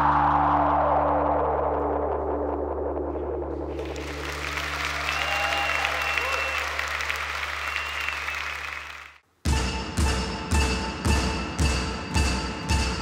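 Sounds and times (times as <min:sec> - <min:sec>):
audience applauding and cheering: 0:03.7 - 0:09.2
whistles from audience: 0:04.5 - 0:09.2.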